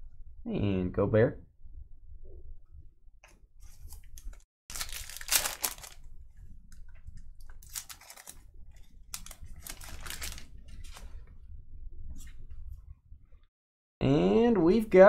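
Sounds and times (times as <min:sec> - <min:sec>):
foil wrapper tearing and crinkling: 0:03.7 - 0:06.1, 0:07.4 - 0:11.1.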